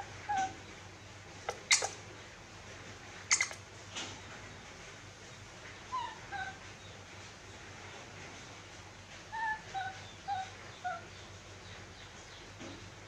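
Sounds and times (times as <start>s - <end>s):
baby monkey whimpering squeaks: 0.3s - 0.6s, 1.6s - 2.0s, 3.3s - 3.6s.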